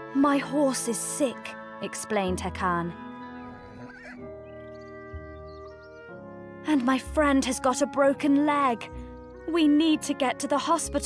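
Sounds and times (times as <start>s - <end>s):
horse whinny: 3.4s - 5.1s.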